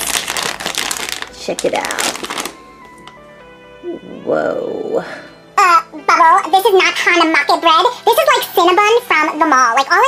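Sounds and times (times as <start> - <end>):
plastic packaging crinkling: 0.0 - 3.2
quiet background music: 0.0 - 10.0.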